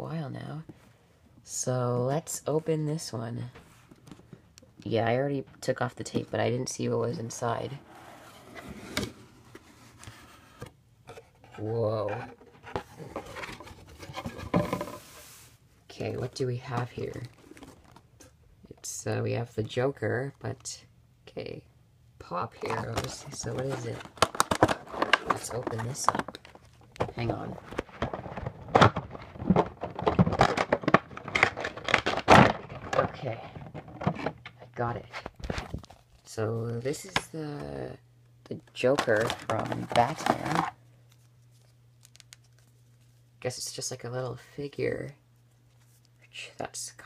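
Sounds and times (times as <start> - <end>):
cardboard box rustles and scrapes: 7.8 - 15.6
cardboard box handling: 8.0 - 15.4, 16.1 - 18.1, 22.6 - 34.4.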